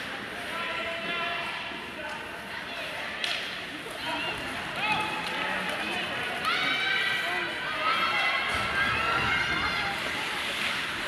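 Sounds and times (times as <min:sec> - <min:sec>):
ice rink background noise: 0:00.0 - 0:11.0.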